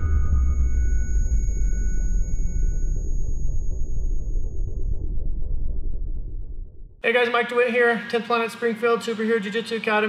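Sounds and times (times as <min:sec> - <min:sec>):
high held tones: 0:00.0 - 0:05.2
deep steady rumble: 0:00.0 - 0:07.0.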